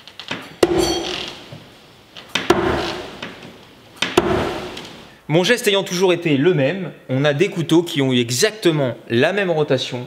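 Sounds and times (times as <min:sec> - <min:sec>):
knives striking wooden target: 0:00.6 - 0:01.5, 0:02.4 - 0:03.4, 0:04.0 - 0:04.9
metallic blade ring: 0:00.6 - 0:01.5.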